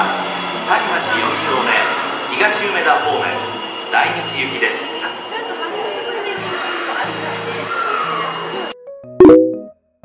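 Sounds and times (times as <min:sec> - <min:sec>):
subway train rumble and hiss: 0:00.0 - 0:08.8
background music: 0:06.3 - 0:10.0.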